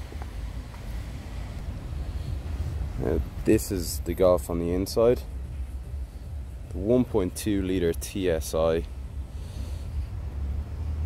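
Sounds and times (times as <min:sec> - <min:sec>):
wind rumble on microphone: 0:00.0 - 0:04.3
faint outdoor background noise: 0:00.0 - 0:11.0.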